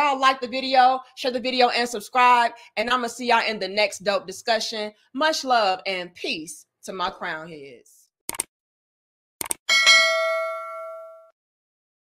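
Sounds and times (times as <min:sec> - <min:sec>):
bright notification bell ding: 0:09.7 - 0:11.4.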